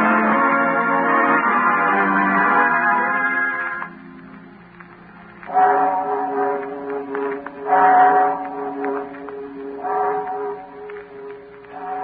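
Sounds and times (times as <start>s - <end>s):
sustained organ-like chords: 0.0s - 12.0s.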